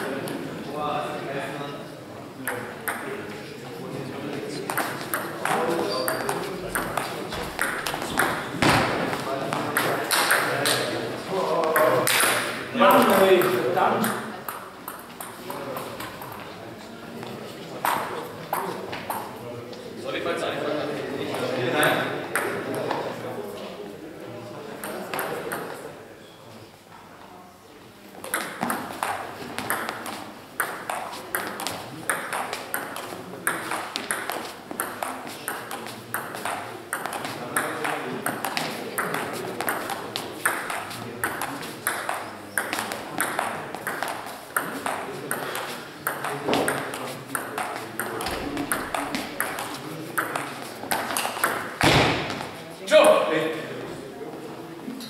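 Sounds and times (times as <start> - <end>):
table tennis ball clicking: 28.2 - 51.7.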